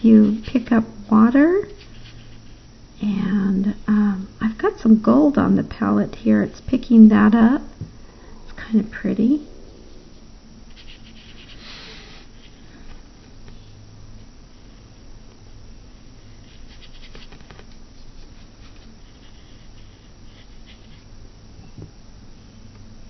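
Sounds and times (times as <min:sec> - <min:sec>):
steady low hum: 0:00.0 - 0:23.0
paintbrush scratching on paper: 0:01.6 - 0:02.7, 0:10.7 - 0:12.6, 0:16.2 - 0:21.1.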